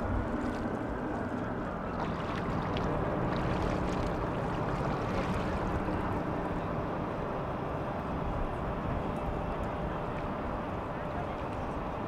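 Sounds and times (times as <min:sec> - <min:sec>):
water lapping and splashing: 0:00.0 - 0:06.5
steady low rumble: 0:00.0 - 0:12.0.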